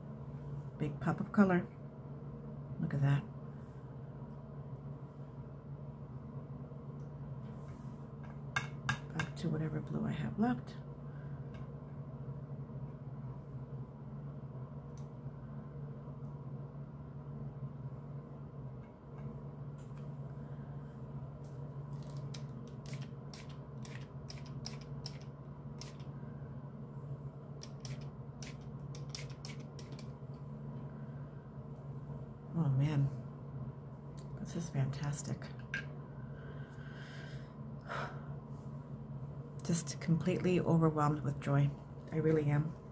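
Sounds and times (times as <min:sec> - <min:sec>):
steady low hum: 0:00.0 - 0:42.9.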